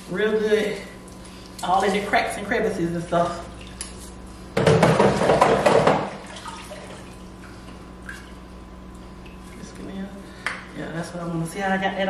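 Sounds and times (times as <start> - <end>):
water splashing into a sink: 4.6 - 7.2.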